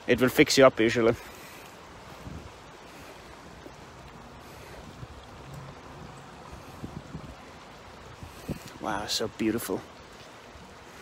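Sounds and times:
flowing river water: 0:00.0 - 0:11.0
wind on microphone: 0:02.1 - 0:02.7, 0:04.8 - 0:08.8.

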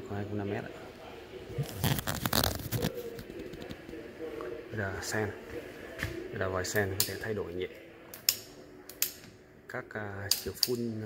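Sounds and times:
rustling crackling handling noise: 0:01.6 - 0:04.0.

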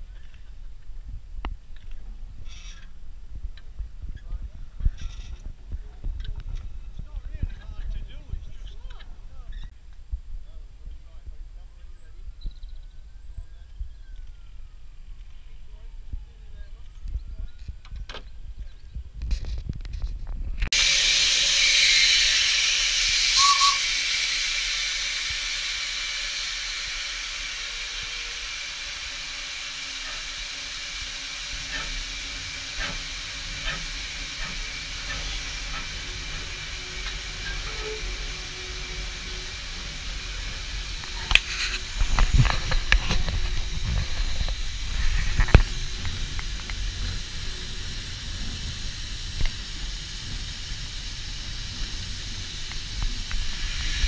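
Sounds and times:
steam locomotive hissing: 0:20.7 - 0:54.0.

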